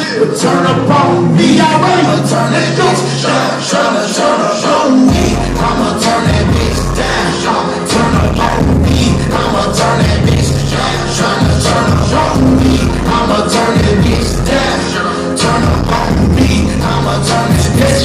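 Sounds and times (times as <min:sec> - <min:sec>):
live hip hop beat: 0:00.0 - 0:18.0
heavy bass line: 0:05.1 - 0:18.0.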